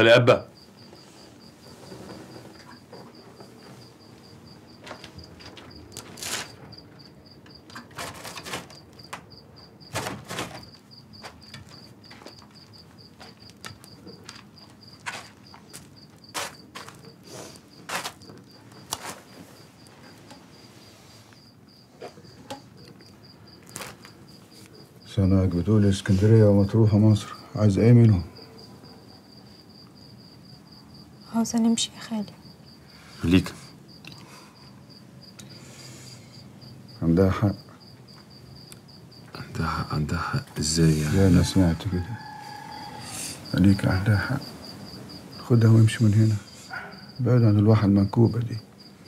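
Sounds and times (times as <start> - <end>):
crickets chirping: 0.0 - 49.0
soft knocks or rustles: 0.8 - 4.0.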